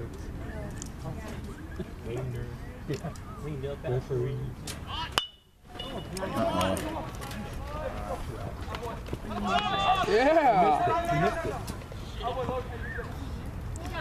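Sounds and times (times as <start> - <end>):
spectators shouting and cheering: 9.3 - 12.3.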